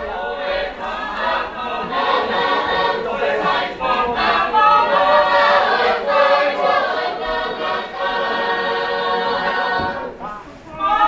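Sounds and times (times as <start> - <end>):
choir singing unaccompanied: 0.0 - 11.0.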